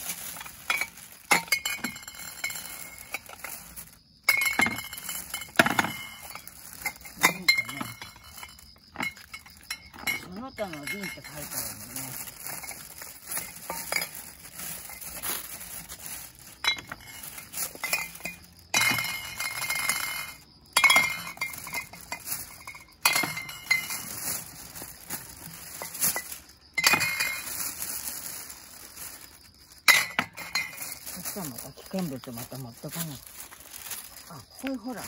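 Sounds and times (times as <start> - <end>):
glass bottles clinking: 0.0 - 35.0
plastic bag rustling: 0.0 - 35.0.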